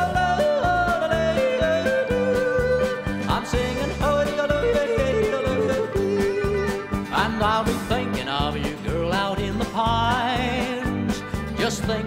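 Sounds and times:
guitar: 0:00.0 - 0:12.0.

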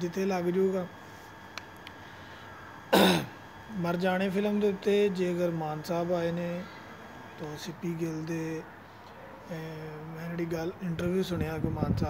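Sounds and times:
man coughing: 0:02.9 - 0:03.4.

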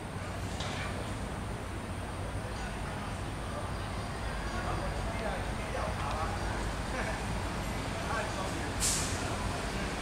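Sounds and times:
street traffic rumble: 0:00.0 - 0:10.0
short hiss: 0:08.8 - 0:09.3.

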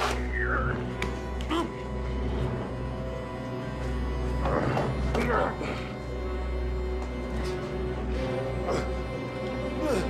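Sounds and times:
dark tense film score: 0:00.0 - 0:10.0
man grunting and gasping: 0:09.7 - 0:10.0.

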